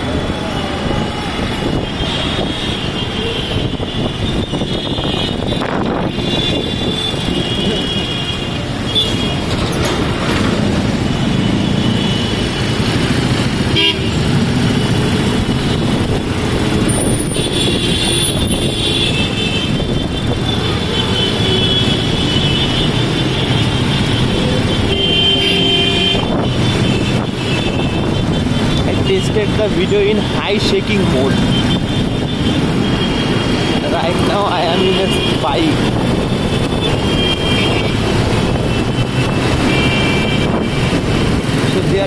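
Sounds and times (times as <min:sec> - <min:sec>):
traffic rumble: 0:00.0 - 0:42.0
vehicles passing: 0:00.0 - 0:42.0
vehicle horns honking: 0:01.7 - 0:09.6, 0:13.6 - 0:14.4, 0:16.9 - 0:29.1, 0:34.7 - 0:41.0.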